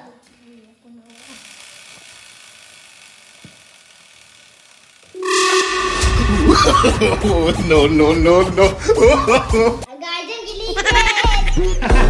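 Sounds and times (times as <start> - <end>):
motorcycle wheel and chain whirring: 1.0 - 5.2.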